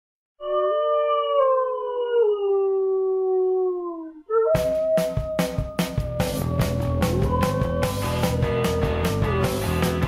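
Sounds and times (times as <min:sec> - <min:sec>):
wolf-like howling: 0:00.4 - 0:10.0.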